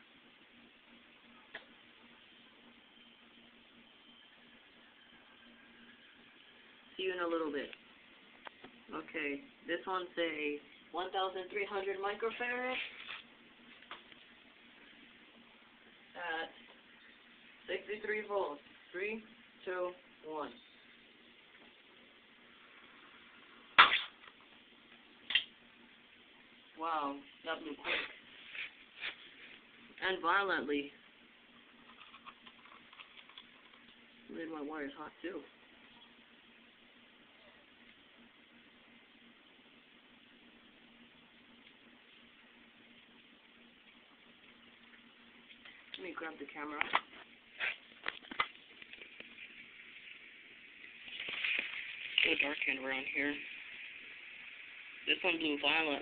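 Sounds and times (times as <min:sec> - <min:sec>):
soft handling rustle: 0:12.3 - 0:15.5
capacitor bang: 0:23.8 - 0:24.2
small pop: 0:23.8 - 0:24.4.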